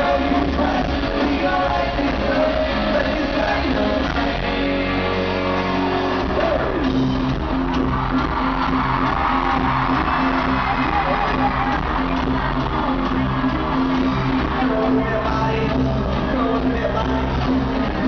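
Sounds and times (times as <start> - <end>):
singing: 0.0 - 5.6, 14.3 - 18.0
live rock band playing: 0.0 - 18.0.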